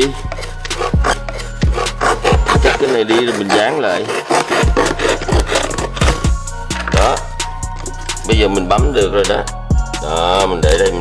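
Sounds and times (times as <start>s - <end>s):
hip-hop music with steady beat: 0.0s - 11.0s.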